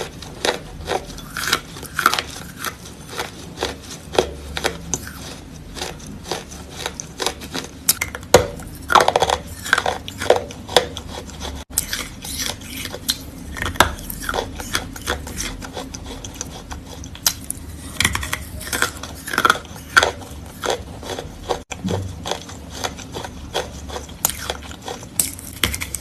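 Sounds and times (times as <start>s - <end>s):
chewing with crisp crunches: 0.0s - 26.0s.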